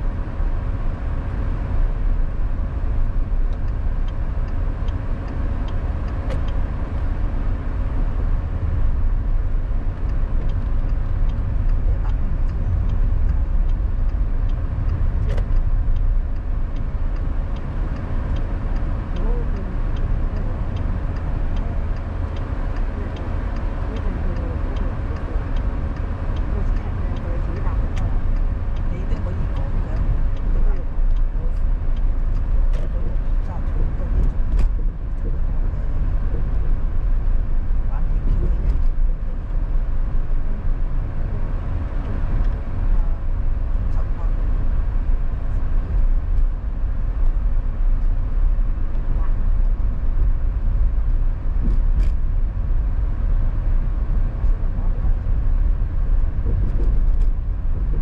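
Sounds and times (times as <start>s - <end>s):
car engine and road noise: 0.0s - 58.0s.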